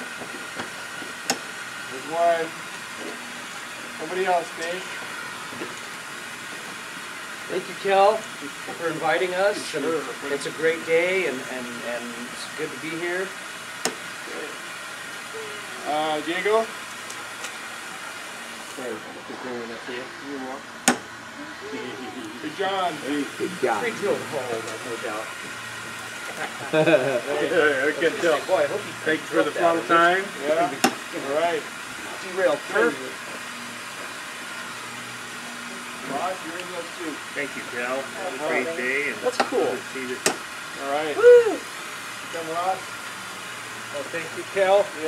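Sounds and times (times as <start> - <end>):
steam locomotive hissing: 0.0 - 45.0.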